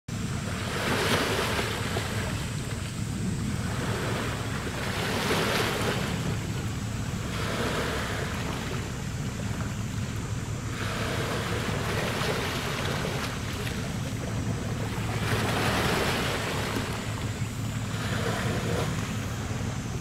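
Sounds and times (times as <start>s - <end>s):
waves washing onto rocky shore: 0.4s - 19.7s.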